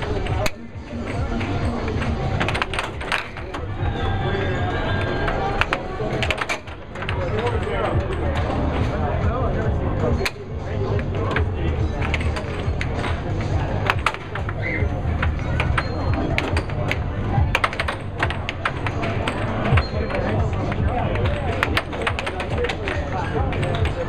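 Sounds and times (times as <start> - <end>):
air hockey puck cracking: 0.0 - 3.6, 10.2 - 24.0.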